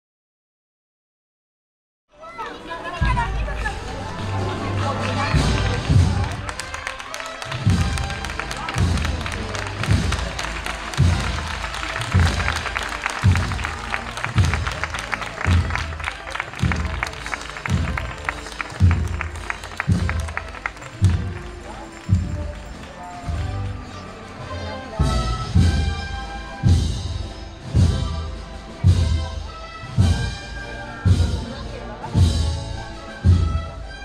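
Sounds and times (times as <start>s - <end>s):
snare drum rattling: 5.3s - 23.4s.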